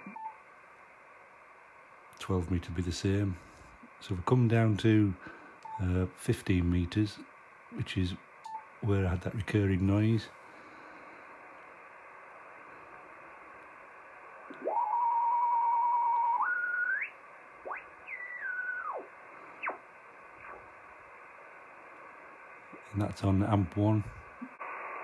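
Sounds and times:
radio band noise hiss: 0.0 - 25.0
radio carrier whistle: 14.5 - 19.8.

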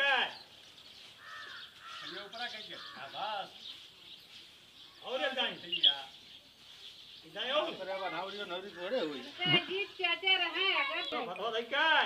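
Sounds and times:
crow cawing: 1.2 - 3.2.

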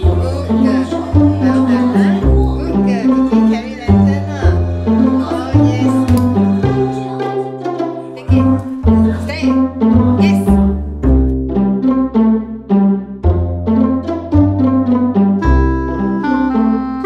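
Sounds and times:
bass line: 0.0 - 17.0
upbeat plucked string music: 0.0 - 17.0.

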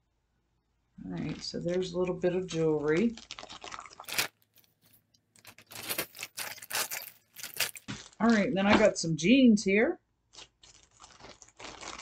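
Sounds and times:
rustling crinkling clicks: 1.2 - 8.5, 10.3 - 12.0.

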